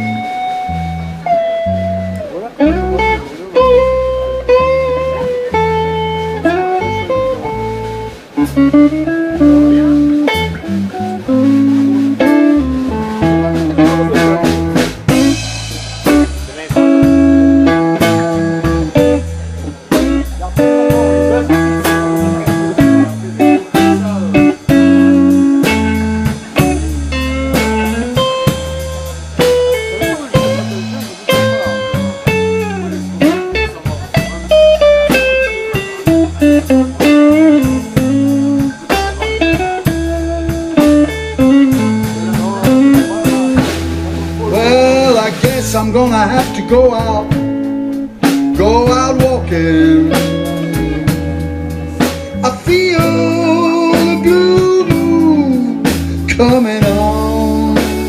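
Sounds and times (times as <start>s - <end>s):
drum kit steady beat: 0.0s - 58.0s
electric bass: 0.0s - 58.0s
electric guitar: 0.0s - 58.0s.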